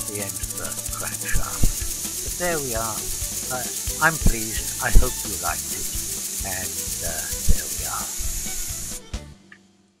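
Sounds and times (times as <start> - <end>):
model engine clatter: 0.0 - 9.0
hiss of exhaust air: 0.0 - 9.1.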